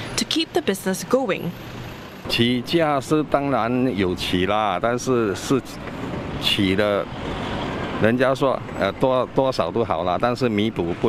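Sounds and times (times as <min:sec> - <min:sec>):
vehicle rumble with tyre hiss: 0:00.0 - 0:11.0
man speaking: 0:02.3 - 0:05.8, 0:06.4 - 0:07.1, 0:08.0 - 0:11.0.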